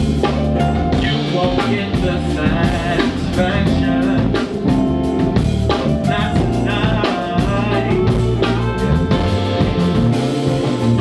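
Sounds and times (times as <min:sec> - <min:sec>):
bass and electric guitar: 0:00.0 - 0:11.0
drum kit beat: 0:00.0 - 0:11.0
live band music: 0:00.0 - 0:11.0.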